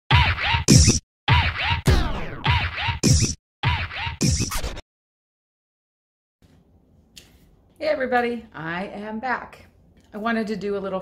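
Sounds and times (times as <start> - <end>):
turntable scratching: 0.1 - 4.8.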